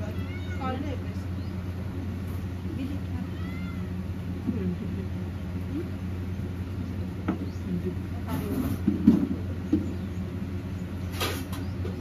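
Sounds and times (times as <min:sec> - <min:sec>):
air cooler fan humming: 0:00.0 - 0:12.0.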